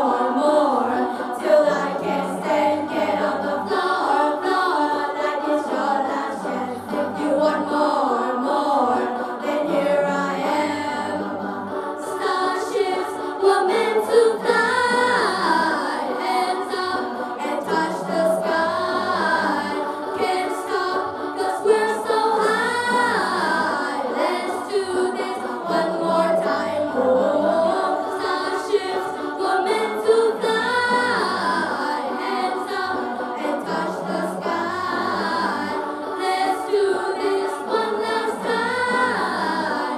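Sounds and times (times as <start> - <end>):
accompanying music: 0.0 - 39.9
students singing in chorus: 0.0 - 39.9.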